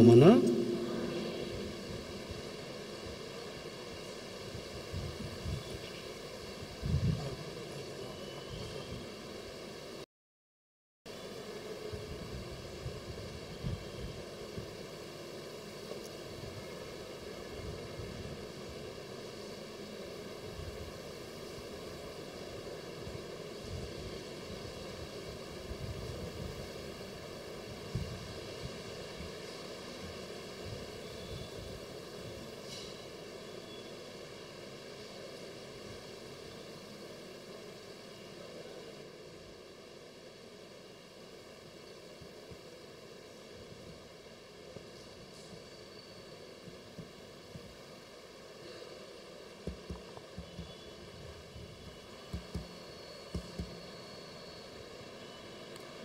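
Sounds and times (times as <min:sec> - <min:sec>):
sound system hiss: 0:00.0 - 0:10.0, 0:11.1 - 0:56.0.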